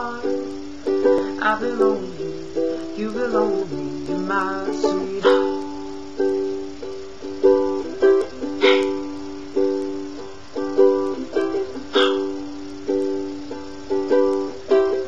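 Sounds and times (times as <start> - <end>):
ukulele strumming: 0.0 - 15.0.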